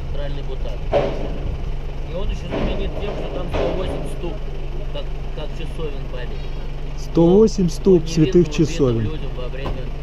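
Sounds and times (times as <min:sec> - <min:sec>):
low voices: 0:00.0 - 0:09.9
vehicle engine idling: 0:00.0 - 0:10.0.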